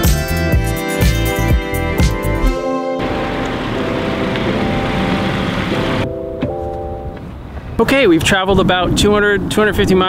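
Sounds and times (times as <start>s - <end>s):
background music sustained notes: 0.4s - 7.5s
loud rushing noise: 2.5s - 6.1s.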